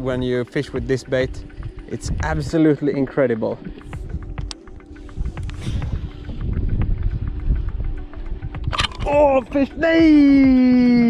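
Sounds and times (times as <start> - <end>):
soft background music note: 0.0 - 11.0
wind rumble on microphone: 0.8 - 2.6, 3.8 - 11.0.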